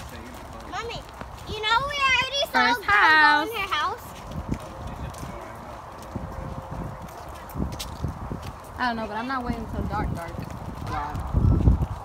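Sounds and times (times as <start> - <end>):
footsteps on asphalt: 0.0 - 12.0.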